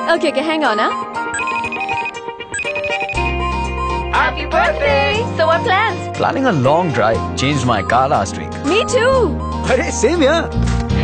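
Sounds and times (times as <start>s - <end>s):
electronic ringtone: 0.0s - 6.0s, 7.2s - 10.0s
background music: 0.0s - 11.0s.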